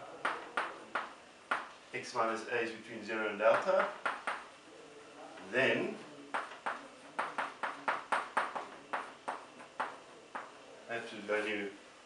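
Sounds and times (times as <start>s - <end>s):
chalk tapping on blackboard: 0.2s - 1.8s, 3.5s - 4.5s, 6.3s - 10.6s.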